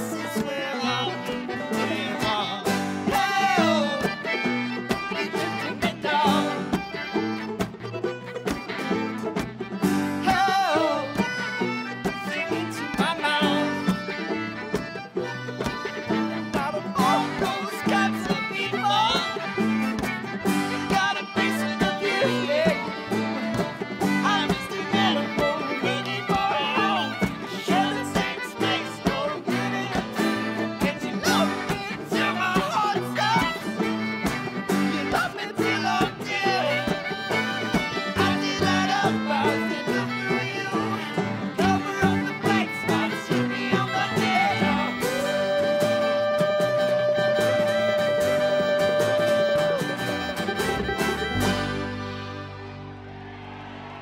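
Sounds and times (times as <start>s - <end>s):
accordion: 0.0s - 54.0s
acoustic guitar: 0.0s - 54.0s
fiddle: 0.0s - 54.0s
picked banjo: 0.0s - 54.0s.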